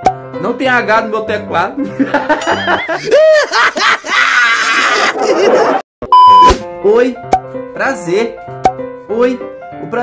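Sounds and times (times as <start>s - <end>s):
laughter: 1.8s - 5.8s
censor bleep: 6.1s - 6.6s.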